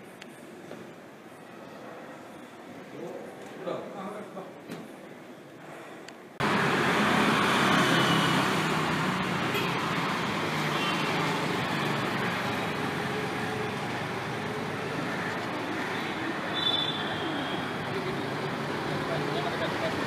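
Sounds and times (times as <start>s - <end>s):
street traffic rumble: 4.2s - 20.0s.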